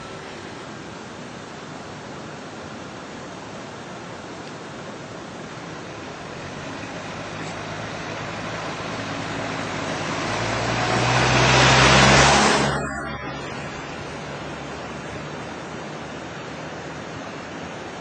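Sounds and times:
vehicle passing by: 0:06.0 - 0:17.6.

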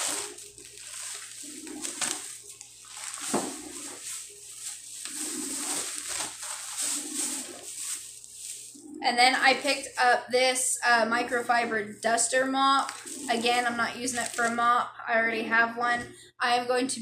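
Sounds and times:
plastic bags rustling and crinkling: 0:00.0 - 0:10.0, 0:12.6 - 0:14.8.

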